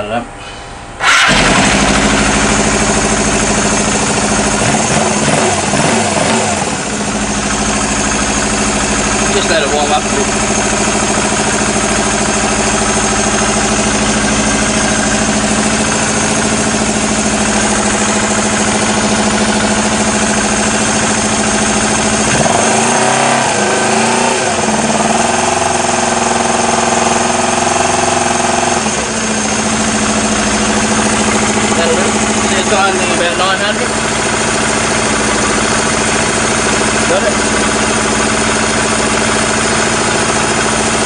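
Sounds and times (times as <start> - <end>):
motorcycle engine idling: 1.1 - 5.6, 6.4 - 22.4, 24.6 - 41.0.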